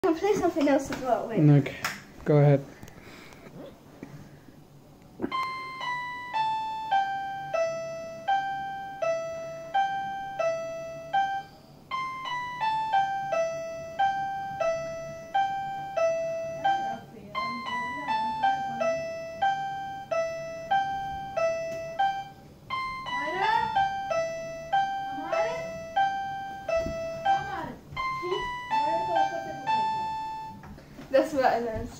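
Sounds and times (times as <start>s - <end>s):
toy keyboard melody: 5.3s - 30.6s.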